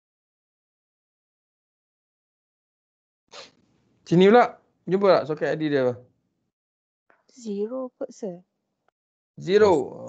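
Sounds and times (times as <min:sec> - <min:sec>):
person talking: 0:09.4 - 0:10.0.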